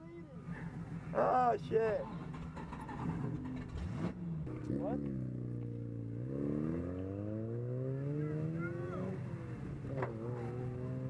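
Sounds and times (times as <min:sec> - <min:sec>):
car engine idling: 0:00.0 - 0:06.2.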